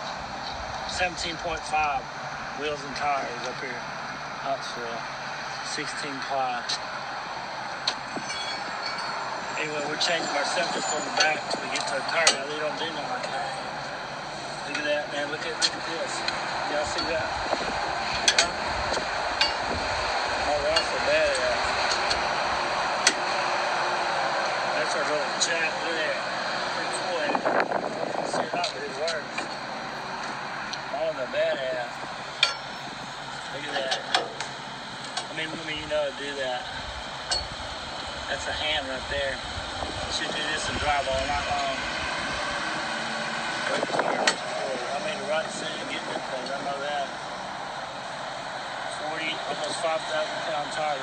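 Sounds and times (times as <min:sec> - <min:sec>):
rushing outdoor background noise: 0:00.0 - 0:51.0.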